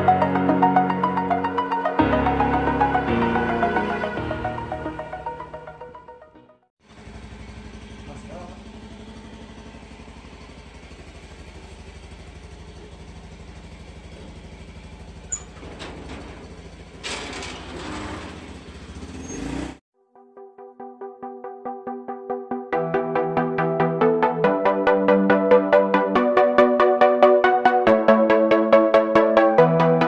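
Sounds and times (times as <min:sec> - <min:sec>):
motorcycle engine idling: 0:06.8 - 0:17.1.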